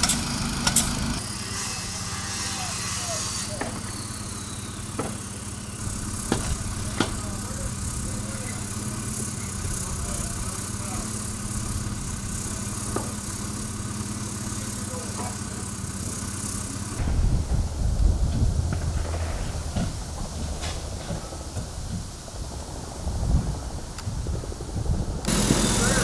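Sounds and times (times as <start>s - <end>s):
low engine hum: 3.9s - 26.0s
sharp knocking and banging: 6.2s - 7.3s
faint voices: 25.4s - 26.0s.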